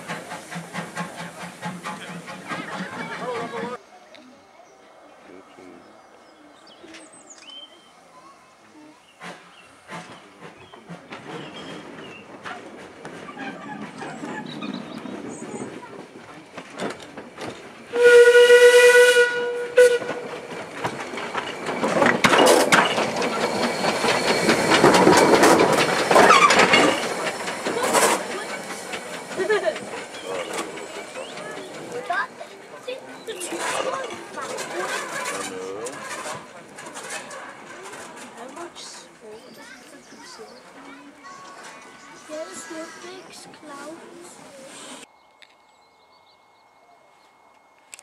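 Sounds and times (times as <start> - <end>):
steam hissing: 0.0 - 3.7, 20.3 - 32.1
steam locomotive exhaust chuffing: 0.0 - 3.8, 9.2 - 39.2.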